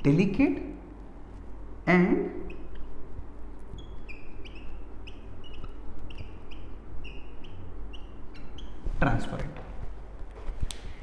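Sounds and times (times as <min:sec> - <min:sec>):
marker squeaking on whiteboard: 0:02.2 - 0:11.0.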